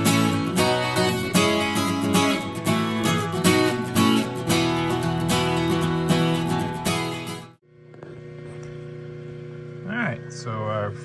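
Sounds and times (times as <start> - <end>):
man speaking: 9.8 - 11.0.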